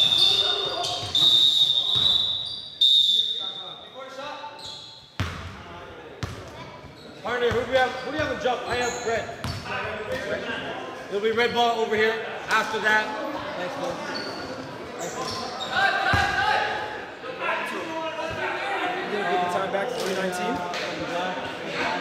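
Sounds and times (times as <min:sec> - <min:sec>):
high steady whistle: 0:00.0 - 0:04.1
players' voices: 0:00.0 - 0:22.0.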